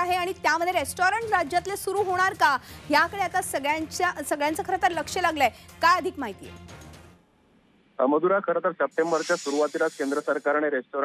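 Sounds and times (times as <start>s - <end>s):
hissing whoosh: 8.9s - 10.6s.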